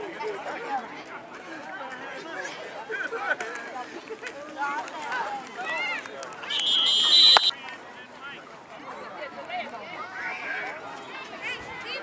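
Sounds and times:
crowd chatter and shouting: 0.0 - 12.0.

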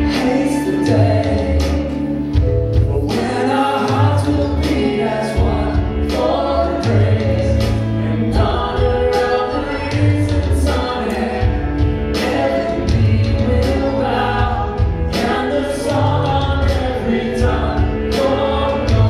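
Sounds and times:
bass guitar: 0.0 - 19.0
electric guitar: 0.0 - 19.0
keyboard: 0.0 - 19.0
voices singing together: 0.0 - 19.0.

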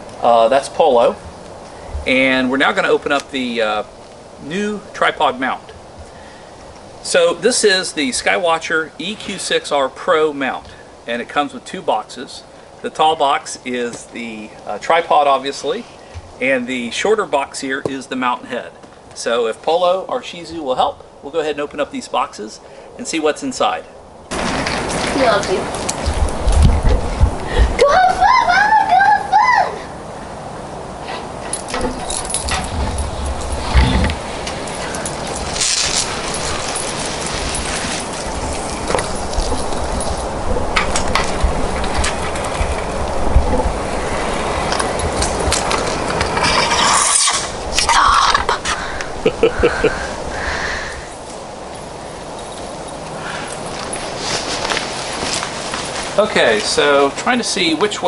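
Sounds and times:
outdoor noise: 0.0 - 58.0
high wavering cry: 27.8 - 30.0
casual voices: 46.3 - 51.2
person laughing: 48.8 - 50.6.

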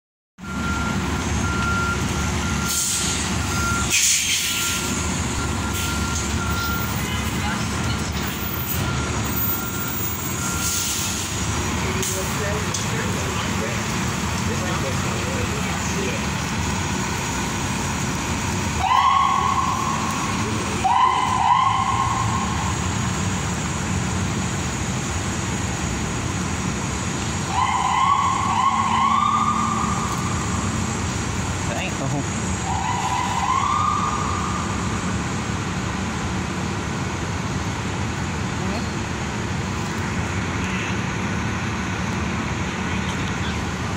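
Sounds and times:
bus engine rumble: 0.4 - 43.9
short sharp hisses: 2.7 - 3.2, 3.9 - 4.8, 10.6 - 11.4.

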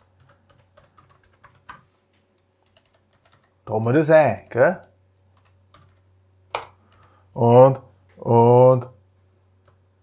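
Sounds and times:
typing on a computer keyboard: 0.0 - 1.8, 2.4 - 3.5, 5.4 - 7.1.

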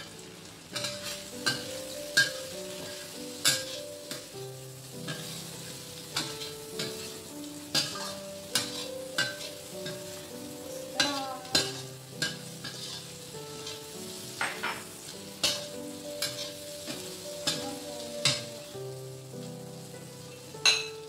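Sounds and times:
shrimp sizzling in a wok: 0.0 - 21.0
soft piano music: 0.0 - 21.0
metal spatula scraping a wok: 0.8 - 4.3, 5.0 - 17.6.

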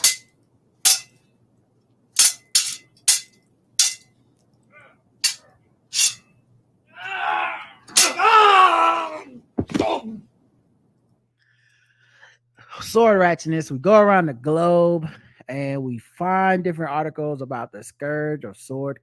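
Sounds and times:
metal blades clanging: 0.0 - 1.2, 2.2 - 4.1, 5.2 - 6.4, 7.9 - 8.2
person yelling: 6.9 - 10.2.

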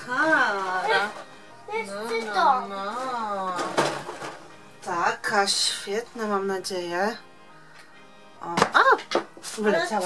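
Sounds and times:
woman talking: 0.0 - 1.2, 4.8 - 7.2, 8.4 - 10.0
background music: 0.0 - 10.0.

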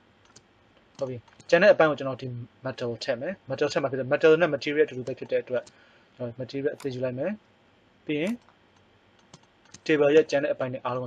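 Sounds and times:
faint computer clicks: 0.2 - 1.6, 5.0 - 5.8, 8.2 - 9.9
person speaking: 1.0 - 7.4, 8.0 - 8.5.

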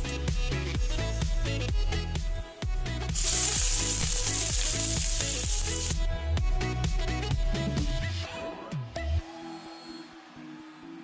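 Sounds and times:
background music with steady beat: 0.0 - 11.0
hot oil sizzling in a frying pan: 3.1 - 6.0.

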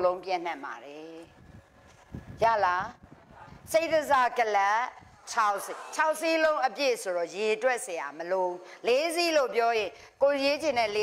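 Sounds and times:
woman speaking: 0.0 - 1.3, 2.4 - 3.0, 3.7 - 11.0.

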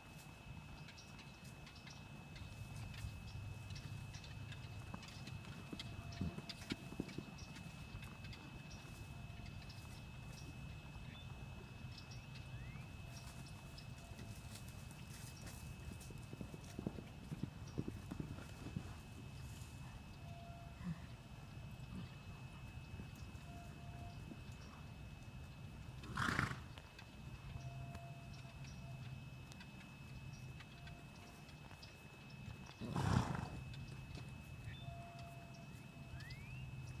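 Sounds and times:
horse hoofbeats on dirt: 2.6 - 20.8, 23.0 - 27.0, 31.4 - 34.8
horse snorting: 26.0 - 26.7, 32.8 - 33.6.

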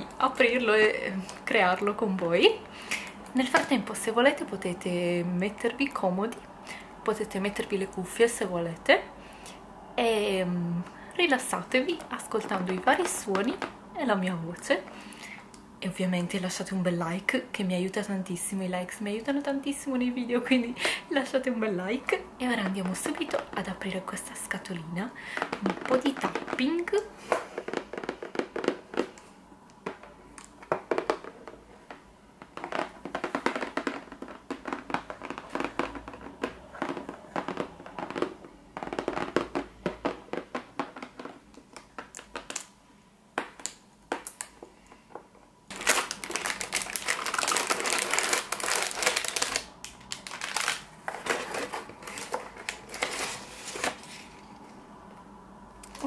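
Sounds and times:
plastic bags crinkling: 25.2 - 29.2, 32.4 - 42.7, 45.7 - 54.5.

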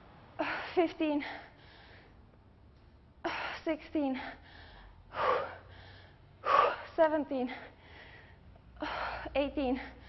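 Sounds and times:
woman gasping: 3.3 - 10.0.

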